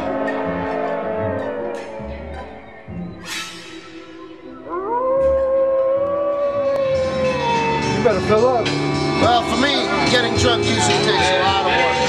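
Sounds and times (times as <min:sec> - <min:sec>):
long howl: 0:00.0 - 0:02.1, 0:04.4 - 0:12.0.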